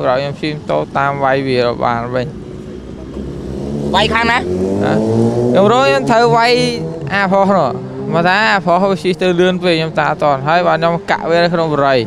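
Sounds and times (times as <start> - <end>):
man speaking: 0.0 - 2.4, 3.9 - 12.0
vehicle engine passing: 0.0 - 12.0.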